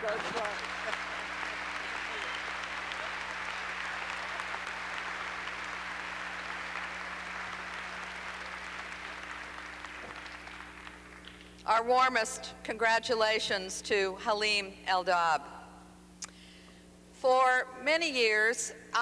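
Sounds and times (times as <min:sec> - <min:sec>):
audience applauding: 0:00.0 - 0:11.4.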